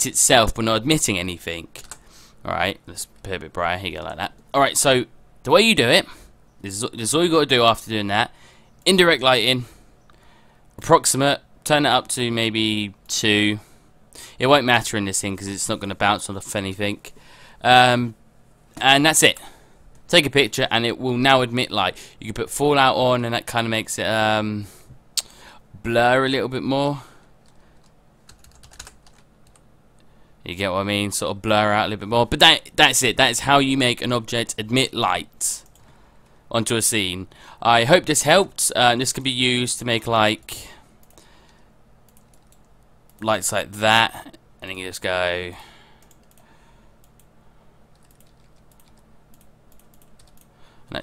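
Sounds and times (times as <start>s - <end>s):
low electrical hum: 0.0s - 51.0s
keyboard typing: 27.4s - 29.7s, 42.1s - 43.2s, 47.9s - 50.5s.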